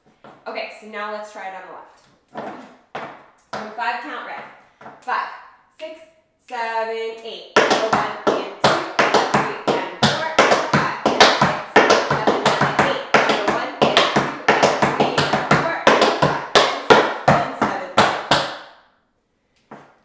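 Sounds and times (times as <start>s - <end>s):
tap shoes on wooden board: 2.3s - 3.7s, 7.6s - 18.6s.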